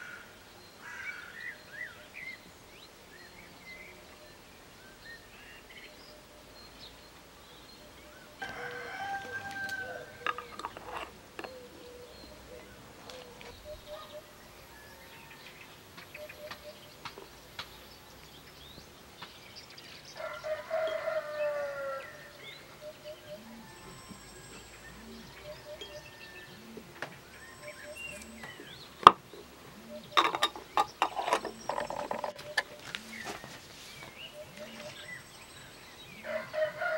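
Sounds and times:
rooster crowing: 0:08.4 - 0:11.6, 0:13.9 - 0:15.6, 0:20.2 - 0:27.0, 0:36.2 - 0:36.9.

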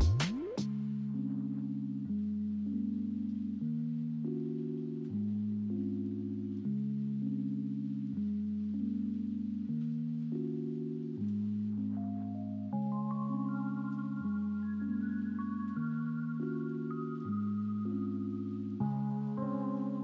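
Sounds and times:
soft sustained low chords: 0:00.7 - 0:20.0.

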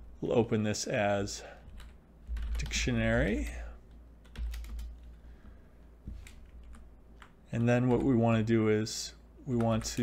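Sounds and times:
computer keyboard typing: 0:01.7 - 0:02.9, 0:04.2 - 0:05.2, 0:06.2 - 0:08.1, 0:09.6 - 0:10.0.

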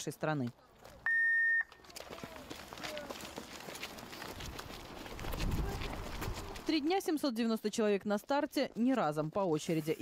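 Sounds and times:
running footsteps: 0:00.4 - 0:10.0
faint voices: 0:01.8 - 0:03.8.

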